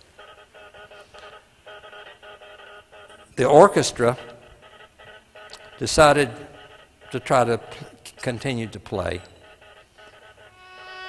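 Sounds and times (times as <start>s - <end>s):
buzzing tones in short bursts: 0.0s - 11.0s.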